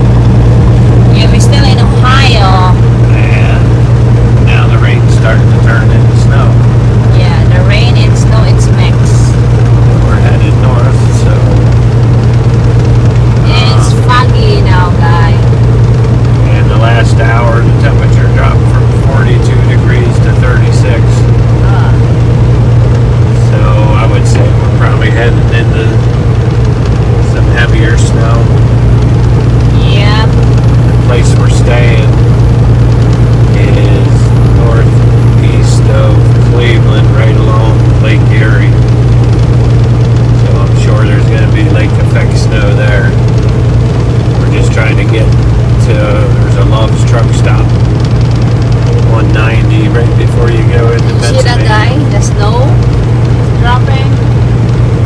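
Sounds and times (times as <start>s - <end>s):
diesel truck engine droning: 0.0s - 55.0s
faint indistinct voices: 3.1s - 3.7s, 4.5s - 6.6s, 10.0s - 11.7s, 16.4s - 22.0s, 23.4s - 26.0s, 27.3s - 28.5s, 31.0s - 32.1s, 33.6s - 38.8s, 40.4s - 43.1s, 44.4s - 47.7s, 48.9s - 52.7s.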